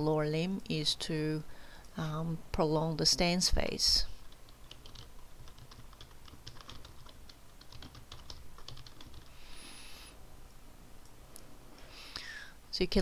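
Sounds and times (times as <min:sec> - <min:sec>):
soft hiss: 0:09.2 - 0:13.0.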